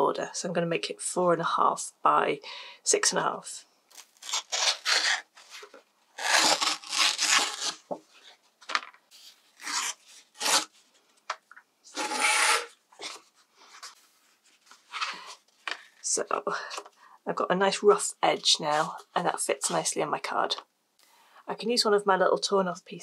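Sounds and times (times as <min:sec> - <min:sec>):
heavy paper tearing: 0:04.0 - 0:07.9, 0:09.6 - 0:10.8, 0:11.9 - 0:13.2.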